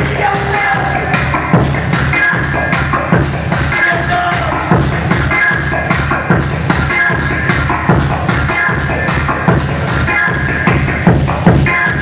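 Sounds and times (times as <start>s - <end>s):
loud electronic music: 0.0s - 12.0s.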